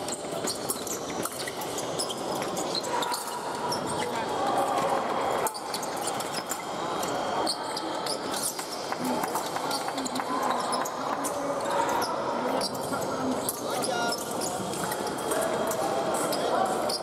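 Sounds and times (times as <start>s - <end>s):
murmur of voices: 0.0s - 17.0s.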